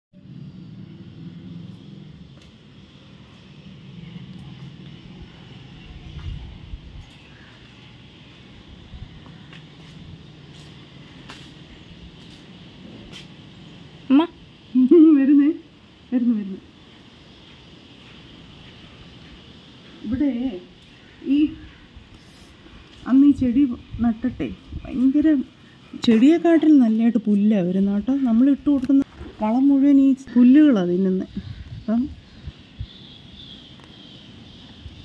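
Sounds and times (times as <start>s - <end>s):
woman speaking: 14.1s - 16.7s, 20.0s - 21.7s, 23.0s - 32.2s.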